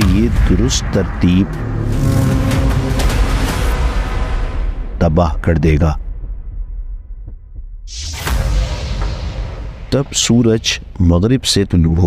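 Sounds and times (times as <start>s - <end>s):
loud rushing noise: 0.0s - 4.9s
deep low rumble: 0.0s - 11.2s.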